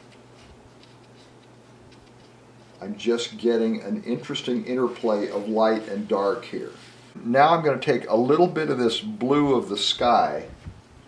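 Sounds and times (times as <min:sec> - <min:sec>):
brush strokes on canvas: 0:00.0 - 0:07.2
steady low hum: 0:00.0 - 0:11.0.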